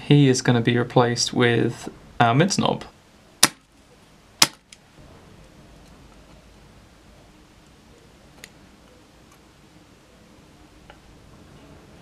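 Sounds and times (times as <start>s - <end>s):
desoldering pump snapping: 4.4s - 4.8s.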